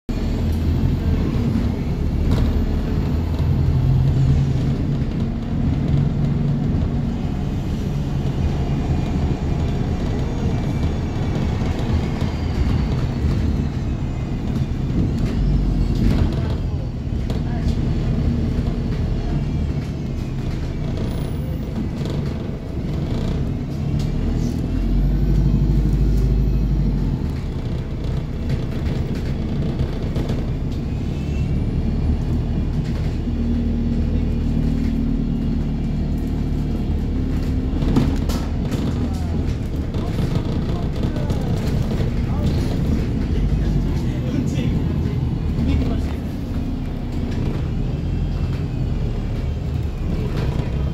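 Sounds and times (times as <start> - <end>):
road rumble: 0.0 - 50.9
bus engine droning: 0.1 - 50.9.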